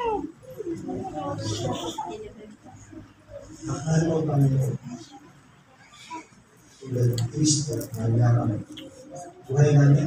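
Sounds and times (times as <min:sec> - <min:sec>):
man speaking: 0:06.7 - 0:08.8, 0:09.4 - 0:10.0.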